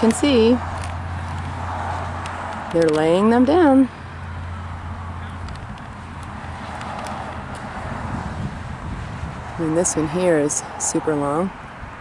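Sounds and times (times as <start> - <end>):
outdoor background rumble: 0.0 - 12.0.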